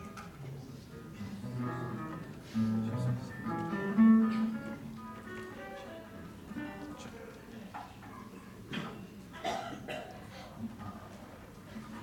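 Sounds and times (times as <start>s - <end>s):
acoustic guitar duet: 1.1s - 7.2s.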